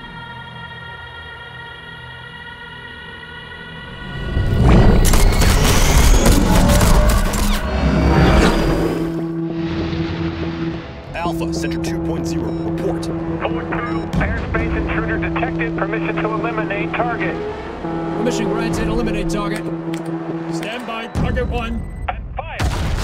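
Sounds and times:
crackling radio-like clicks: 0:05.0 - 0:07.7
tense music chord: 0:08.0 - 0:22.0
explosion and crashing effects: 0:22.6 - 0:23.0.

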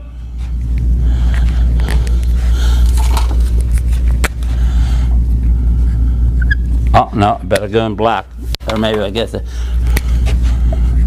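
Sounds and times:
loud low hum: 0:00.0 - 0:11.0
marker squeaking on whiteboard: 0:06.4 - 0:06.8.

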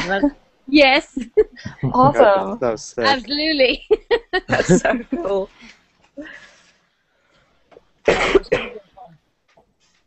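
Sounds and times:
person coughing: 0:08.1 - 0:08.9.

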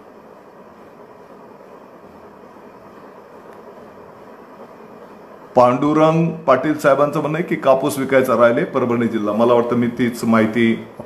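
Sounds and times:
rushing background hiss: 0:00.0 - 0:11.0.

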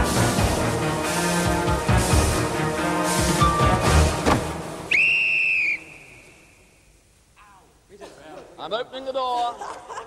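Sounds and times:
tense game-show music: 0:00.0 - 0:04.9
pea whistle blast: 0:04.8 - 0:06.9.

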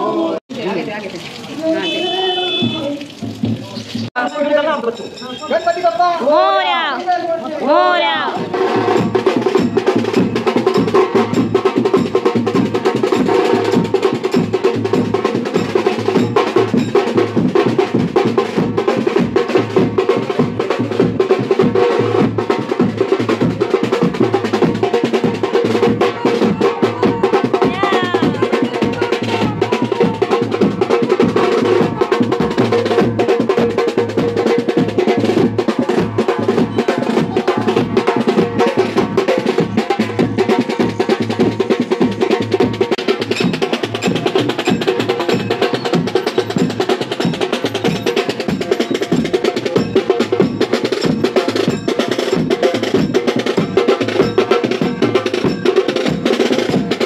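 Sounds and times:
snare drums: 0:01.8 - 0:04.2, 0:07.7 - 0:57.0
bass drum: 0:02.0 - 0:04.2, 0:07.7 - 0:57.0.

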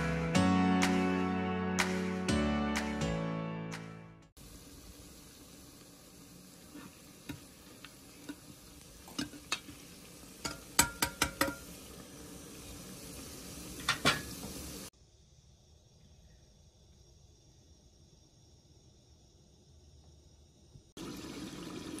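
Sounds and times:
onions sizzling in oil: 0:04.4 - 0:14.9, 0:21.0 - 0:22.0
ladle knocking against pot: 0:10.4 - 0:11.6.

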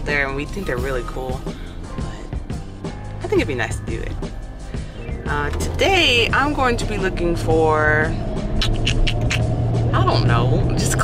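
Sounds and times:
car engine hum: 0:00.0 - 0:11.0.

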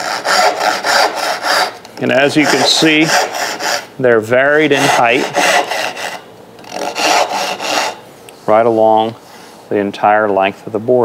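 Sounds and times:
hand saw cutting wood: 0:00.0 - 0:03.9, 0:04.6 - 0:08.0.

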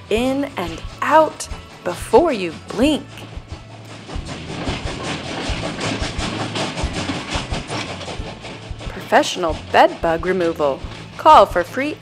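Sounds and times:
train rumbling along track: 0:00.0 - 0:12.0
wheels clattering on rails: 0:00.0 - 0:12.0.

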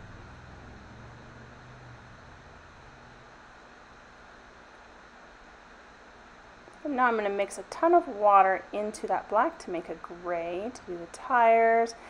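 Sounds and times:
low hum: 0:00.0 - 0:12.0
room tone hiss: 0:00.0 - 0:12.0.

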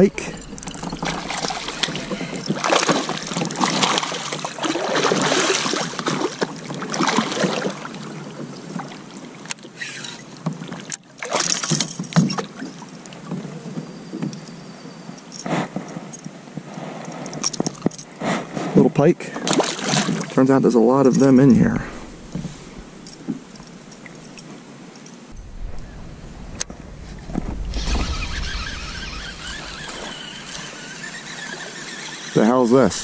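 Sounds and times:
wind on microphone: 0:00.0 - 0:04.1, 0:21.2 - 0:24.1, 0:25.3 - 0:31.8
fish thrashing at water surface: 0:00.0 - 0:07.7
water lapping at a kayak: 0:00.0 - 0:14.8, 0:15.7 - 0:25.9, 0:27.8 - 0:33.0.

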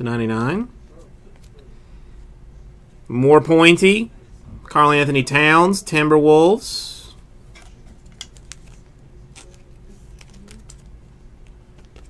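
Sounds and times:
low steady hum: 0:00.0 - 0:12.0
card handling clicks and taps: 0:07.5 - 0:12.0.

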